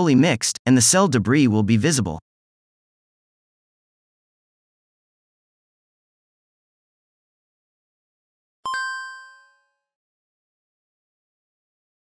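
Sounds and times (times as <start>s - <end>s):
electronic chime: 8.7s - 9.8s.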